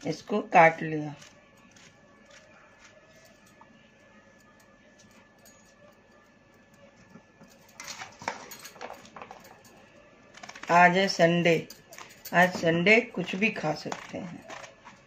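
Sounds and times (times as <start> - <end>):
knife cutting vegetables: 1.2 - 3.4, 12.0 - 15.0.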